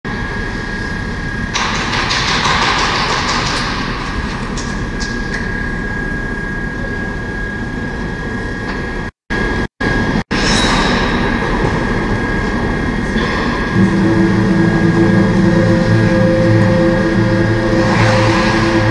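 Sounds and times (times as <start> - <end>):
indoor arena hall rumble: 0.1 - 18.9
music: 13.7 - 18.9
thin high tone: 13.7 - 18.9.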